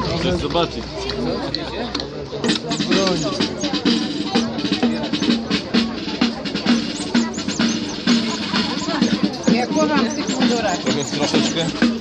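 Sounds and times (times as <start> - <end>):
drum strikes: 1.9 - 12.0
brass band playing a march: 2.4 - 12.0.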